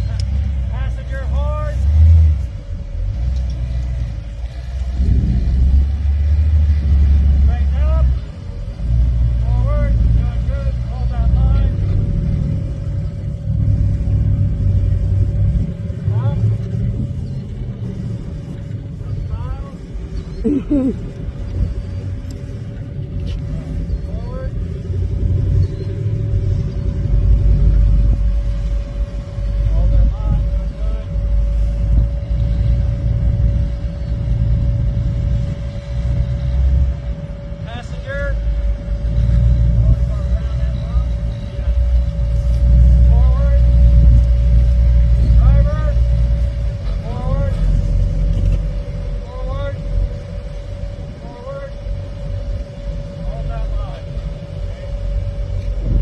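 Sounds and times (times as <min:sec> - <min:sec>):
buggy engine rumbling at low revs: 0:00.0 - 0:56.0
thin whine: 0:00.0 - 0:56.0.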